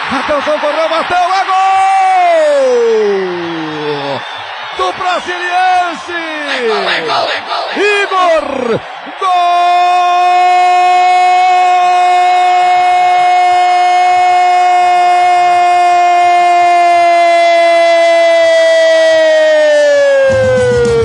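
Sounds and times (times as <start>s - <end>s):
music: 20.3s - 21.0s.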